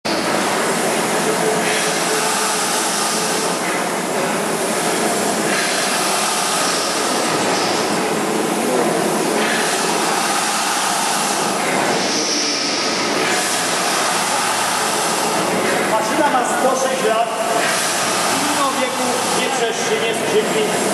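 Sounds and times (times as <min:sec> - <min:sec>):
steam engine hissing: 0:00.2 - 0:20.9.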